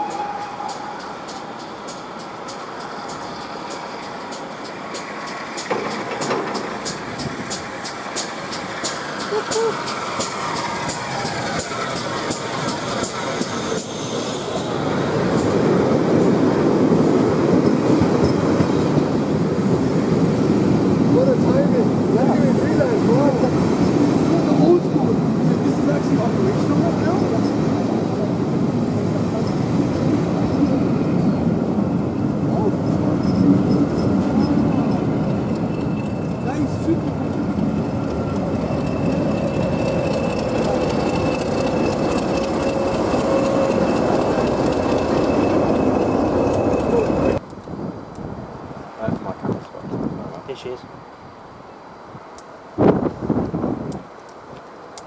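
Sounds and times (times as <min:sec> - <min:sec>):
train wheels rumbling on rails: 0:00.0 - 0:47.6
diesel locomotive engine hum: 0:00.0 - 0:55.0.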